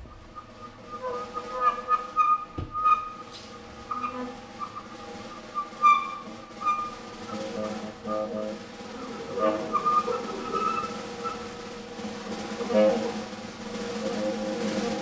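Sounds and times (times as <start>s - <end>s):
drum and cymbal taps: 0.0s - 15.0s.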